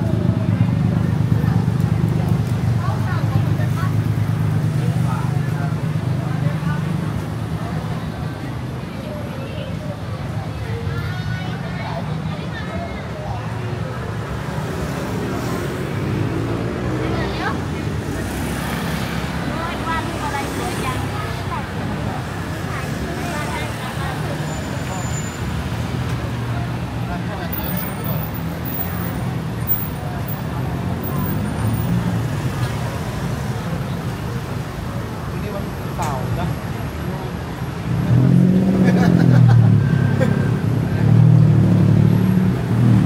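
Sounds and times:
traffic rumble: 0.0s - 43.0s
voices of passers-by: 0.0s - 43.0s.

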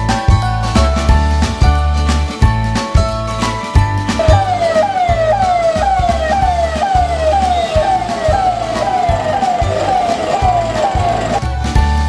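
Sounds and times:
music with steady beat: 0.0s - 12.0s
electronic vehicle siren wailing: 4.2s - 11.5s.

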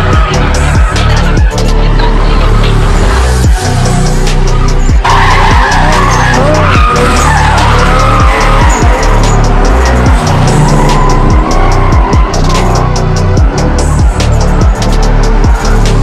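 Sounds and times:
electronic music with heavy beat: 0.0s - 16.0s
tyres squealing: 0.0s - 16.0s.

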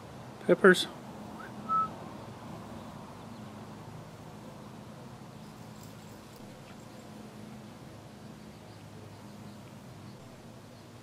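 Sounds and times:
faint outdoor background hiss: 0.0s - 11.0s
rising whistle: 1.4s - 2.0s.

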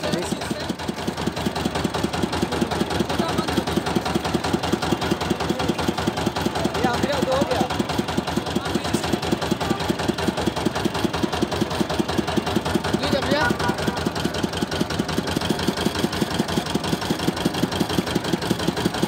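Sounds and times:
small engine chugging: 0.0s - 19.0s.

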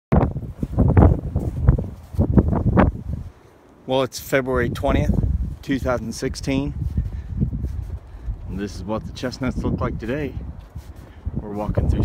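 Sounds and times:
wind buffeting microphone: 0.1s - 3.4s, 4.4s - 12.0s
footsteps crunching in snow: 0.2s - 3.6s, 5.1s - 8.9s, 10.0s - 12.0s.

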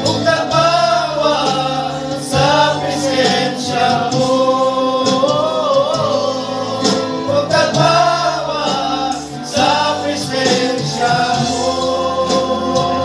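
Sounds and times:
men singing gospel song: 0.0s - 13.0s.

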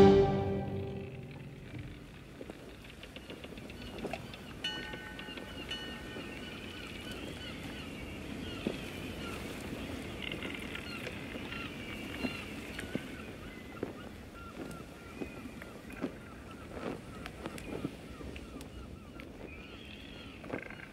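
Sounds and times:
sea and wind wash: 0.0s - 20.7s.

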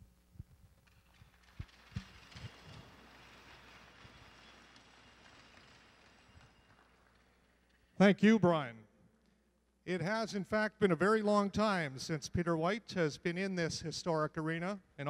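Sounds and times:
faint crowd applause: 1.3s - 7.9s.

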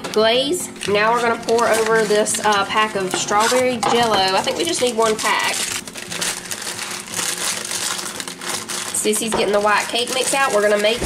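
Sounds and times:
powder packet crinkling: 0.8s - 11.0s.

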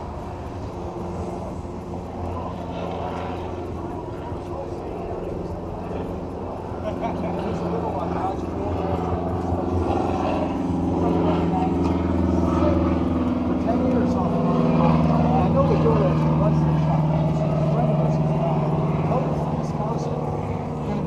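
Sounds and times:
engine idling: 0.0s - 21.0s.

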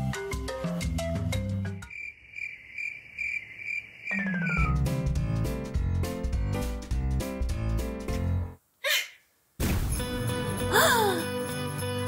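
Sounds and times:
background music: 0.0s - 1.9s, 4.2s - 8.6s, 9.6s - 12.0s
cricket chirping: 1.8s - 4.8s.

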